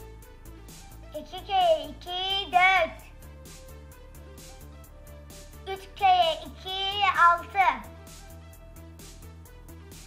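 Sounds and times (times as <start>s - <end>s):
children's music with steady beat: 0.0s - 10.0s
childlike voice chanting: 1.2s - 3.1s, 5.7s - 7.9s.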